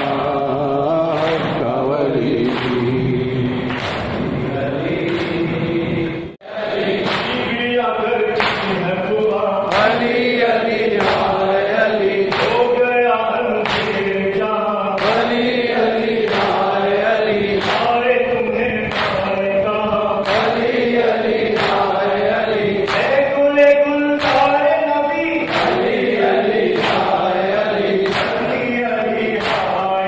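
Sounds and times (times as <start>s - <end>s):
men chanting in unison: 0.0s - 30.0s.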